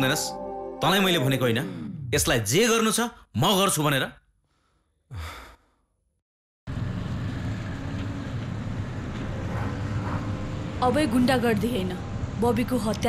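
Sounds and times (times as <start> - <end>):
person sighing: 5.1 - 5.8.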